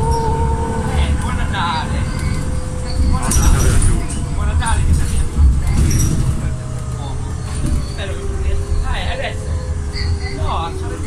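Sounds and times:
bus interior rumble: 0.0 - 11.0.

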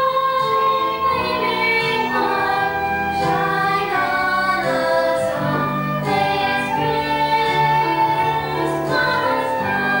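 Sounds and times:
girls singing together: 0.0 - 10.0.

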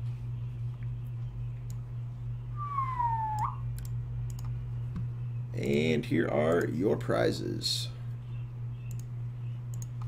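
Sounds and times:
low electrical hum: 0.0 - 10.0
tone sliding down in pitch: 2.6 - 3.6
computer mouse clicks: 3.4 - 5.1, 8.8 - 9.1, 9.7 - 10.0.

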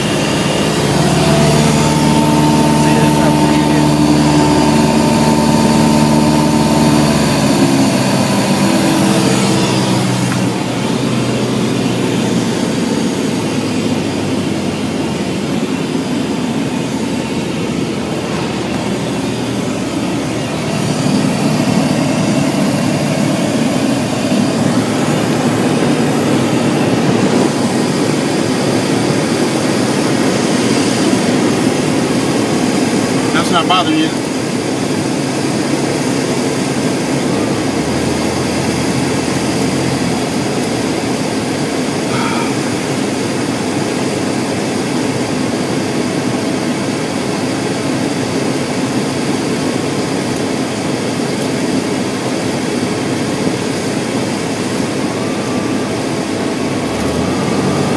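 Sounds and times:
propeller plane engine drone: 0.0 - 57.9
wind noise: 15.6 - 33.3.

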